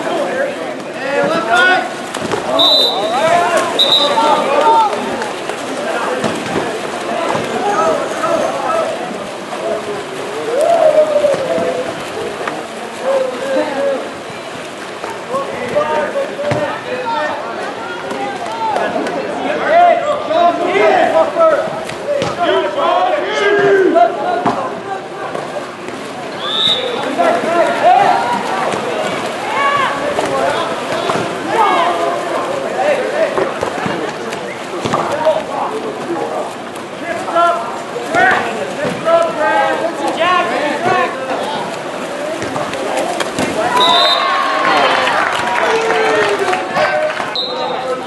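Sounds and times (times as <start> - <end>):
crowd noise: 0.0 - 48.0
voices calling and shouting: 0.0 - 48.0
people shouting: 10.4 - 11.9.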